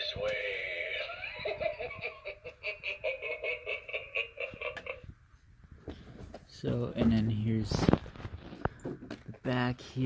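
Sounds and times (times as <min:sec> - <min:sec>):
recorded evil laugh from small speaker: 0:00.6 - 0:05.1.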